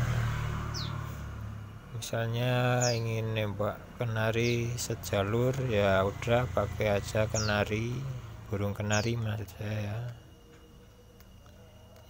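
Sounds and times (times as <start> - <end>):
songbird chirp: 0.0 - 12.0.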